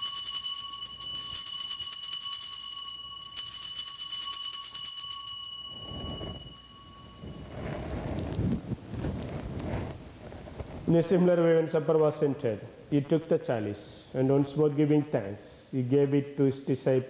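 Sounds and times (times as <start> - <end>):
altar bells jingling: 0.0 - 8.2.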